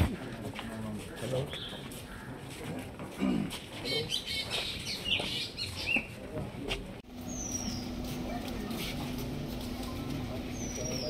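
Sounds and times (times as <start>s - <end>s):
birds chirping: 0.0s - 2.5s, 3.8s - 6.2s, 7.1s - 11.0s.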